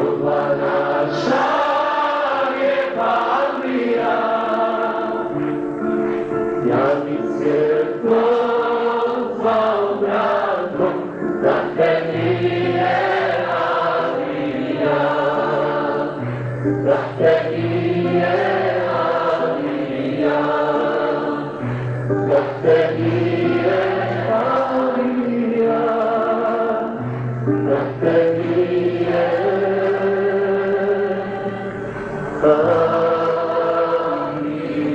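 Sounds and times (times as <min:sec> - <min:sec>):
choir singing devotional song: 0:00.0 - 0:34.9.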